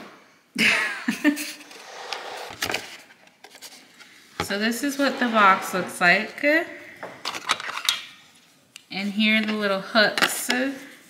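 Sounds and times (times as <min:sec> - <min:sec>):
rubbing and scraping handling noise: 0:01.4 - 0:11.0.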